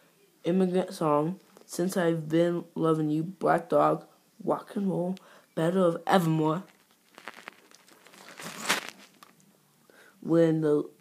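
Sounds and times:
rustling crinkling handling noise: 6.6s - 9.4s.

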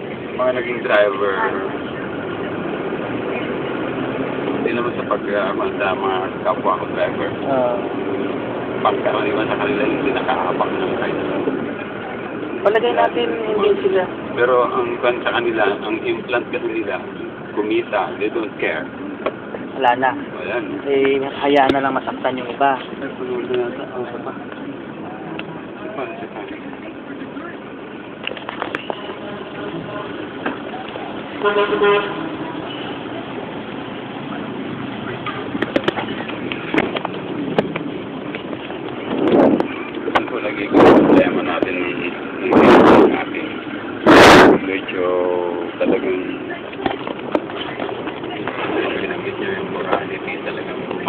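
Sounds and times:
indistinct voices: 0.0s - 51.0s
road traffic: 0.0s - 51.0s
car horn honking: 28.7s - 30.4s, 31.3s - 33.3s.

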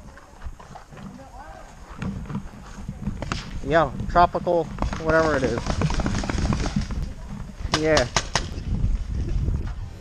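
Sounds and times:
paintball markers firing: 7.7s - 8.6s.

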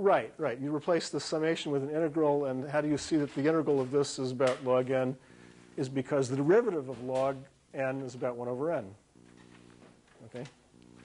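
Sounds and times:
faint steady low hum: 0.0s - 11.0s.

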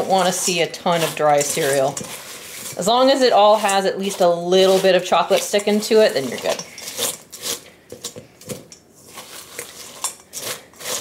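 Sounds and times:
spatula stirring cereal in metal bowl: 0.0s - 11.0s.

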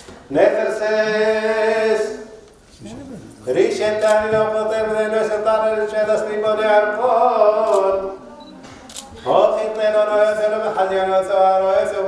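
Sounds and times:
person chanting liturgical melody: 3.5s - 8.2s, 9.3s - 12.0s.

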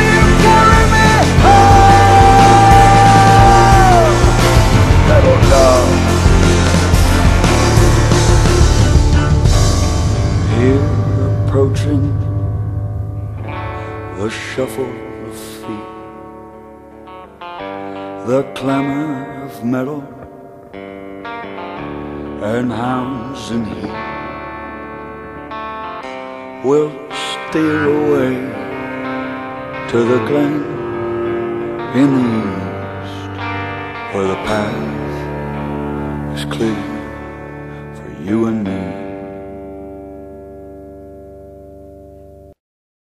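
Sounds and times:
band holding final chord: 0.0s - 16.8s
electric guitar ringing chords: 0.0s - 42.6s.

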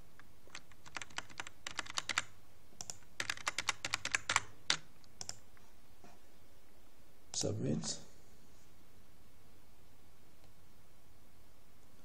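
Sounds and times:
computer keyboard typing: 0.5s - 5.4s.

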